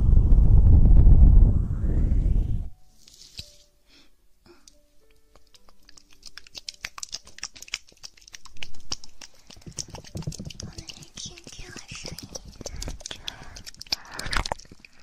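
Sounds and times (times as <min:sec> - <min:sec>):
rustling: 0:02.9 - 0:03.7
small clicks and taps: 0:04.6 - 0:15.0.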